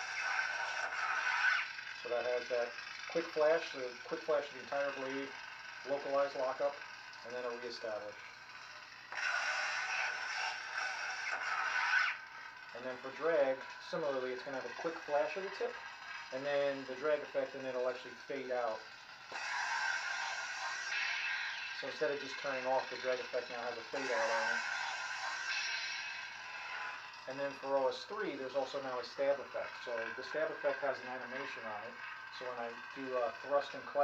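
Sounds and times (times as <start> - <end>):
crackling electronic buzz: 0.0 - 28.4.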